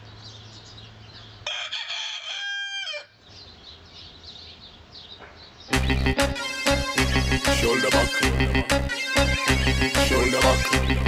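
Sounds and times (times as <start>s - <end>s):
small birds chirping: 0.0s - 1.4s, 3.1s - 6.0s
rooster crowing: 1.4s - 3.2s.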